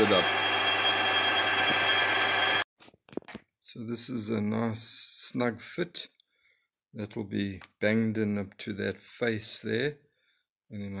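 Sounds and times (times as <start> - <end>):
metal lathe hum and whine: 0.0 - 2.6.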